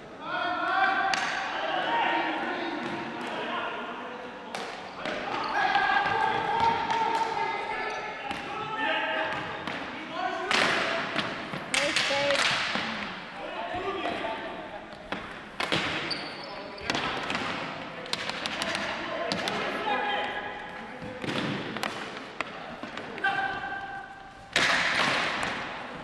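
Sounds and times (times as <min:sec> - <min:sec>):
sticks clacking on ball and floor: 0:10.5 - 0:12.9.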